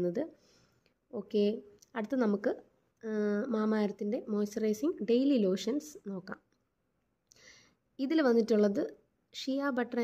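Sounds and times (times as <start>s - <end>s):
person speaking: 1.1s - 6.5s, 8.0s - 10.0s.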